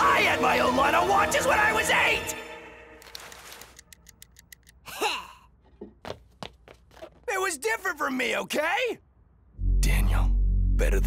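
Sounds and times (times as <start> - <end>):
fast light clicks: 3.1 - 4.8.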